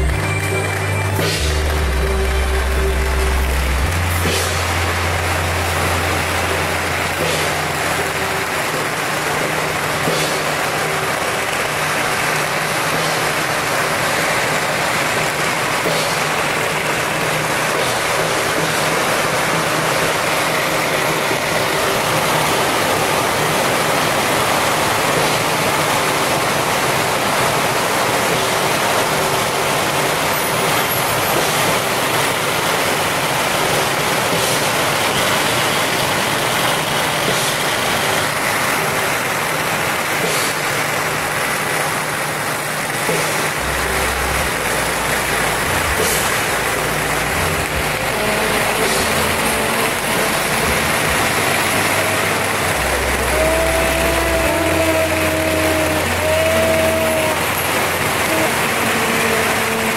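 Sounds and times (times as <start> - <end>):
firecrackers crackling: 0.0 - 59.9.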